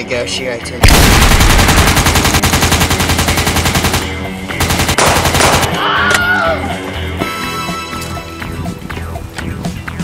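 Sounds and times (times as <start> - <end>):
rapid automatic gunfire: 0.8 - 5.7.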